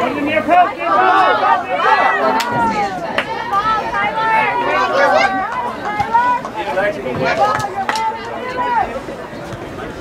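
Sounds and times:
people chattering: 0.0s - 10.0s.

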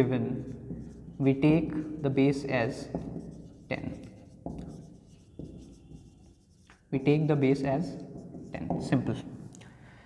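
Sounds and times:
marker pen on whiteboard: 0.0s - 9.6s.

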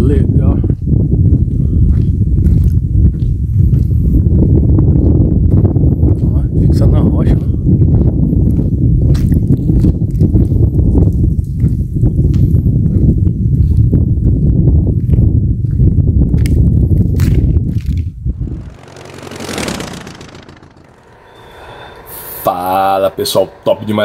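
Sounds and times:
wind rumbling on microphone: 0.0s - 23.4s
whoosh effect: 18.2s - 24.0s.

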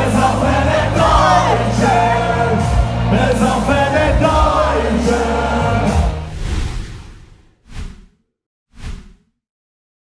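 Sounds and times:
whoosh sound effects: 6.3s - 8.2s.

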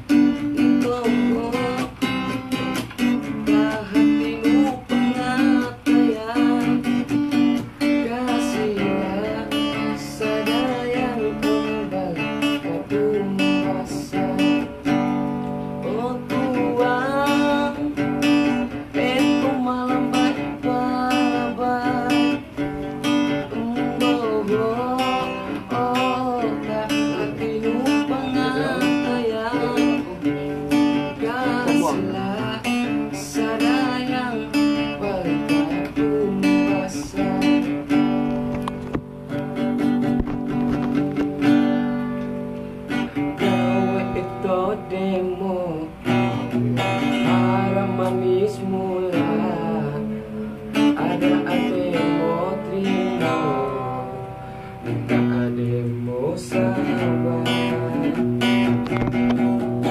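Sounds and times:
man singing: 0.0s - 38.6s, 43.0s - 59.9s
acoustic guitar strumming: 0.0s - 59.9s.

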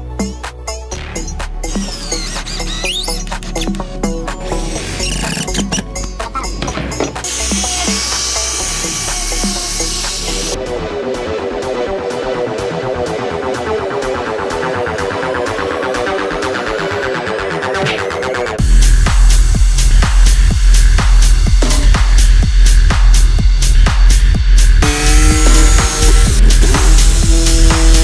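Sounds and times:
electronic music with beat: 0.0s - 28.0s
angle grinder sanding: 1.6s - 10.6s, 24.8s - 28.0s
cordless drill driving screws: 1.7s - 10.6s.

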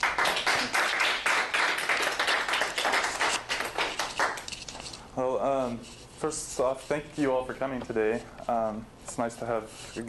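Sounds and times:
audience applauding: 0.0s - 4.5s.

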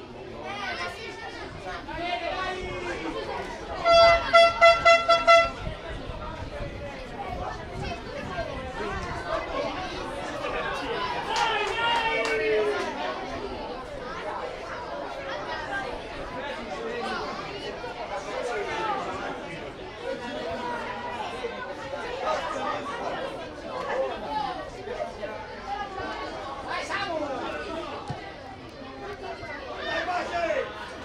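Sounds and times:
chatter of overlapping voices: 0.0s - 31.0s
people calling out: 1.8s - 5.9s.

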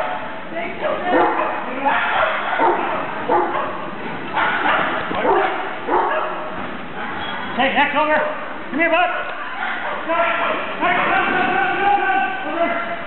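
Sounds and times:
dog barking: 1.1s - 3.8s, 4.4s - 6.5s.

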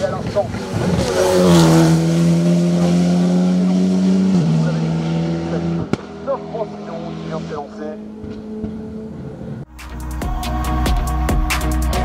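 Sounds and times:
race car engine passing by: 0.0s - 9.6s.

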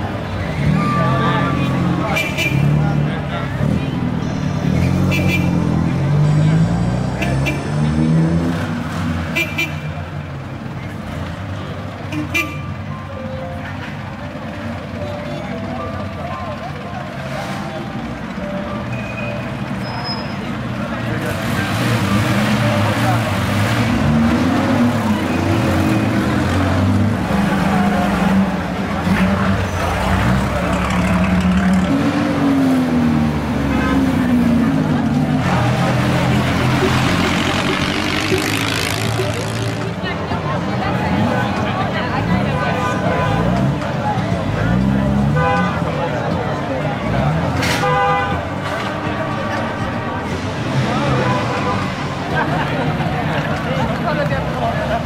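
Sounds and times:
crowd chatter: 0.0s - 55.0s
race car engine revving: 0.4s - 9.4s, 20.6s - 55.0s.

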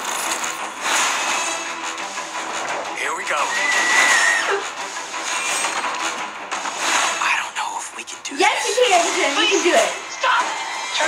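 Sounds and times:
action trailer music: 0.0s - 11.0s.

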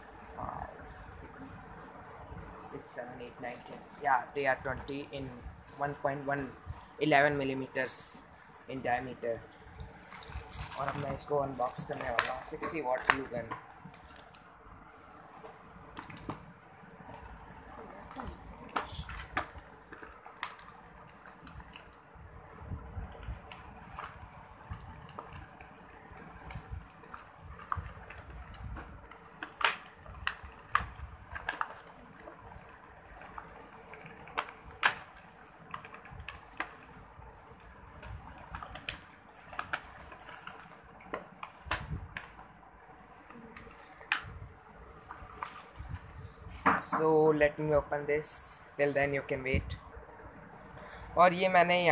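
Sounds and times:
plastic packaging rustling and crackling: 0.1s - 49.8s.

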